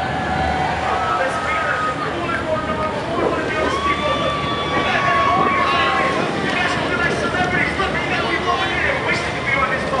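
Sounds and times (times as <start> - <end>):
boat engines running: 0.0 - 10.0.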